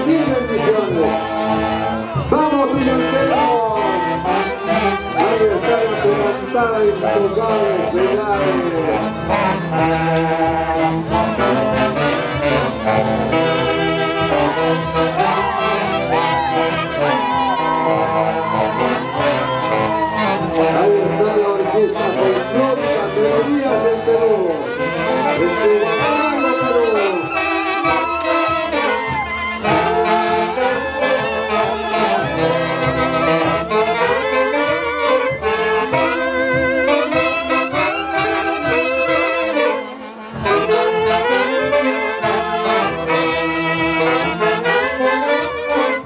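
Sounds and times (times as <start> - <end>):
saxophones and clarinets band playing: 0.0 - 46.0.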